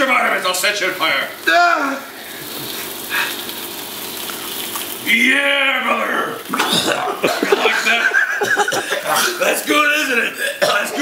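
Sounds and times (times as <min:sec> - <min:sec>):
sparkler fizzing: 0:00.4 - 0:05.2.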